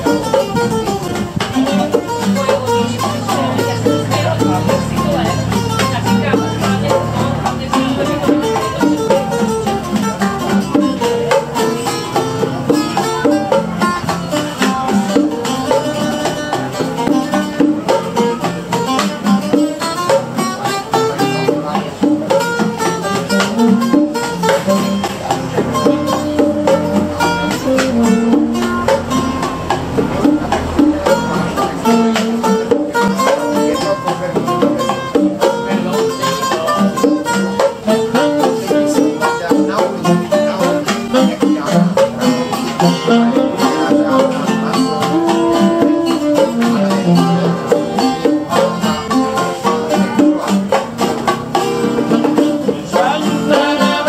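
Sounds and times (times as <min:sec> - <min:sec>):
bongos: 0:00.0 - 0:54.0
guitars strummed and picked: 0:00.0 - 0:54.0
saxophone: 0:22.6 - 0:33.9, 0:36.2 - 0:50.8.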